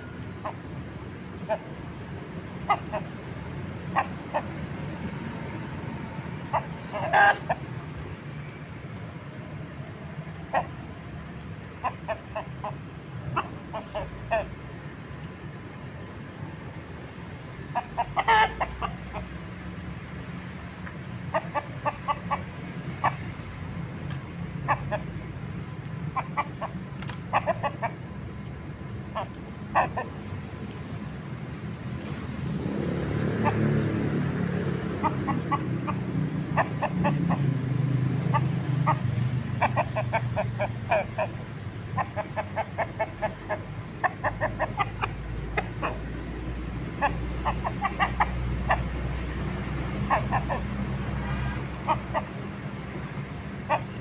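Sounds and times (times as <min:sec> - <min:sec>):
vehicle rumble: 0:00.0 - 0:54.0
rooster clucking: 0:01.3 - 0:01.8, 0:02.6 - 0:04.6, 0:06.4 - 0:07.7, 0:09.9 - 0:10.9, 0:11.7 - 0:14.6, 0:17.2 - 0:19.3, 0:20.8 - 0:23.4, 0:24.2 - 0:28.2, 0:29.0 - 0:30.7, 0:32.8 - 0:54.0.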